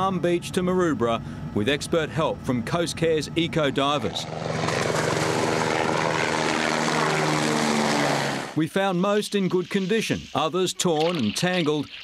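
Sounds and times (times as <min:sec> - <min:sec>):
motor running steadily: 0:00.0 - 0:08.6.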